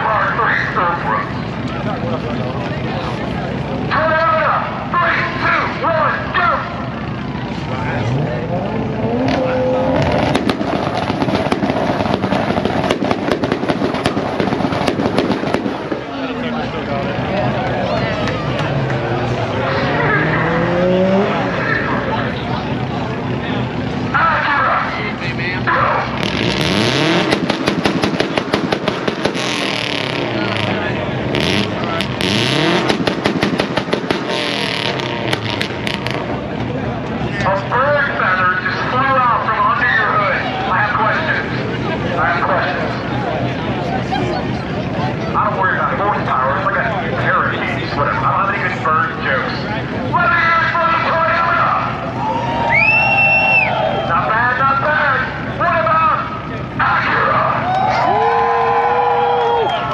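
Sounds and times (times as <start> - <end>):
race car engines revving: 0.0 - 59.9
engine crackling: 1.2 - 59.9.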